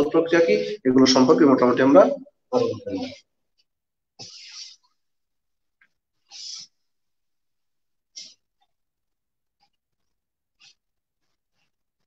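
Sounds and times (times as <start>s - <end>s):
whiteboard eraser swish: 4.2s - 4.9s.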